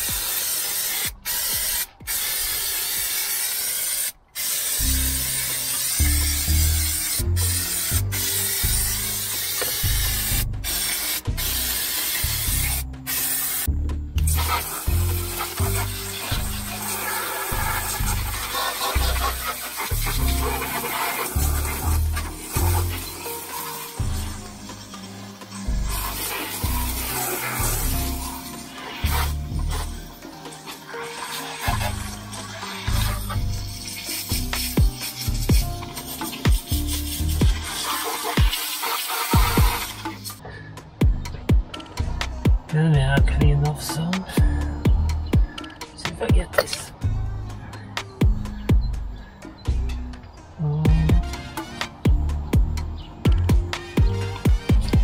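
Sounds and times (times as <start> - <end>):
aerosol can spraying: 0.0 - 40.4, 53.3 - 55.0
garden hose spraying water: 0.0 - 40.4, 50.9 - 55.0
background music with steady beat: 0.0 - 55.0.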